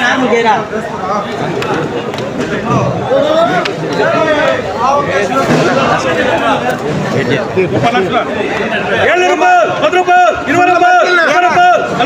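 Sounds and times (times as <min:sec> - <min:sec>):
men talking over one another: 0:00.0 - 0:12.0.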